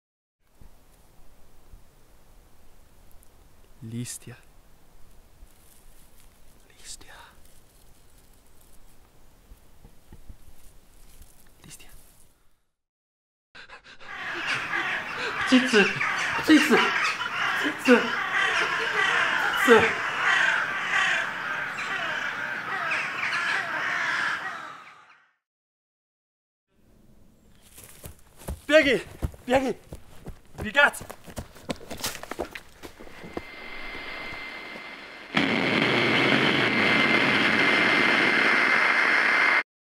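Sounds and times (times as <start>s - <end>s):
many birds calling: 14.0s - 25.3s
high steady whine: 32.9s - 39.6s.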